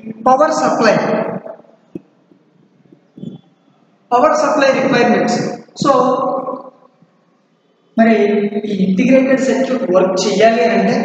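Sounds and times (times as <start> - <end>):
man speaking: 0.0 - 1.6, 4.1 - 6.5, 8.0 - 11.0.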